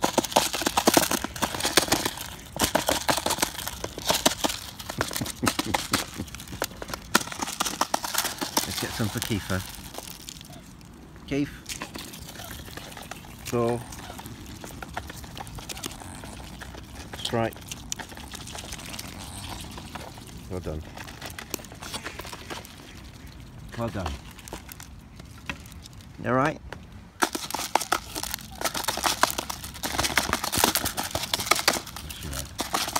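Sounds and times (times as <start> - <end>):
bill scooping seeds in plastic tub: 0.0 - 10.6.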